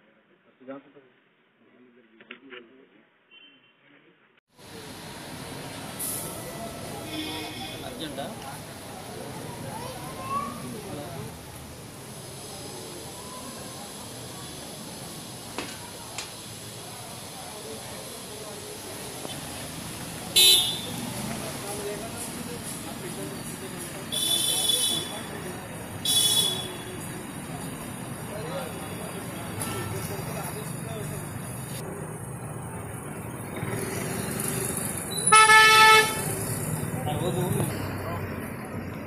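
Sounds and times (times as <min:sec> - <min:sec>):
street noise: 0:00.1 - 0:39.0
vehicle horn honk: 0:20.4 - 0:21.0, 0:24.1 - 0:25.3, 0:26.0 - 0:26.9, 0:29.6 - 0:30.2, 0:35.1 - 0:36.3.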